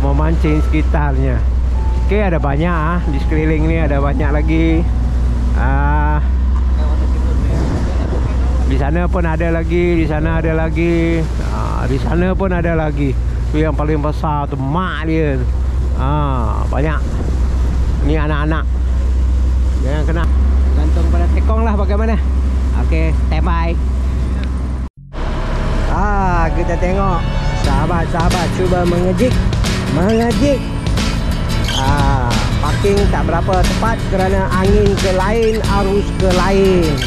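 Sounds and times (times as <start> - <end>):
boat engine droning: 0.0 - 37.0
sea noise: 0.0 - 37.0
wind: 0.0 - 37.0.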